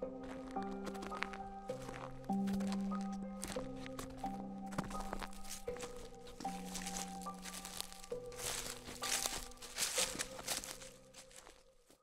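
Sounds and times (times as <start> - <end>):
soft background music: 0.0 - 12.0
footsteps crunching on dry leaves: 0.2 - 12.0.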